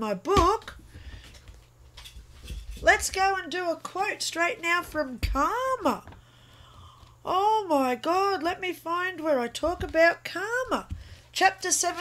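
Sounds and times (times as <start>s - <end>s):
faint rustling of movement: 0.8s - 5.2s.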